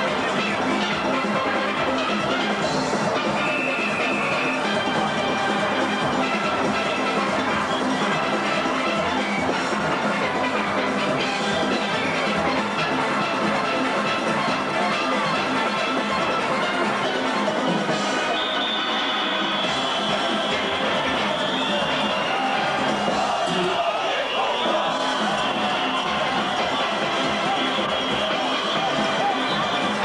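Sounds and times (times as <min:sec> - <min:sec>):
steel band playing: 0:00.0 - 0:23.5, 0:24.6 - 0:30.0.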